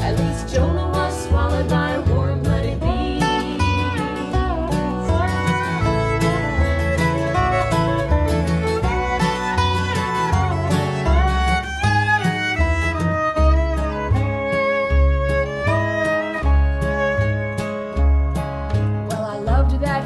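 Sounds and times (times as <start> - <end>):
acoustic guitar: 0.0 - 20.0
bowed fiddle: 0.0 - 20.0
resonator guitar slide melody: 0.0 - 20.0
upright bass: 0.0 - 20.0.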